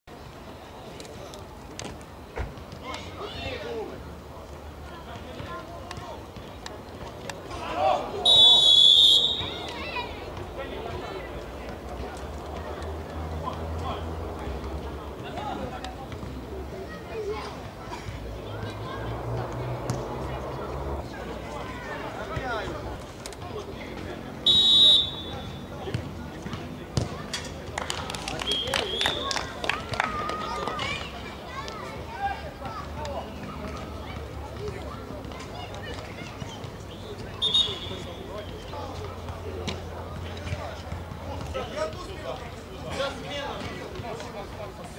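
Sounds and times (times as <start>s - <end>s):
players calling: 4.8s - 44.9s
referee's whistle blast: 8.2s - 9.8s, 24.4s - 25.6s, 37.4s - 38.2s
ball kicks: 25.8s - 27.2s.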